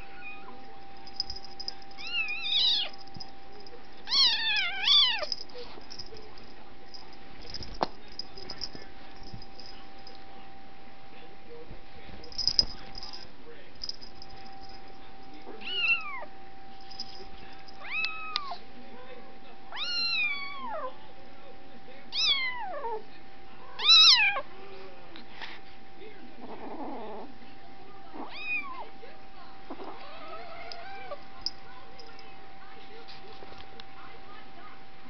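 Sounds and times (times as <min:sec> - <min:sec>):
faint steady hum: 0:00.0 - 0:35.0
cat meowing: 0:04.1 - 0:05.3, 0:19.8 - 0:20.8, 0:28.2 - 0:28.8.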